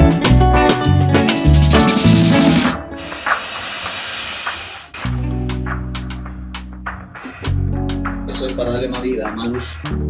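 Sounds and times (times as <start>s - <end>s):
steady hiss: 3.0s - 5.1s.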